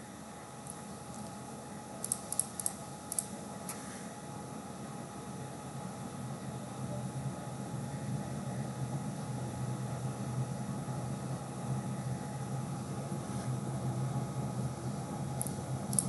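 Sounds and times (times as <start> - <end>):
computer cooling fan hiss: 0.0 - 16.0.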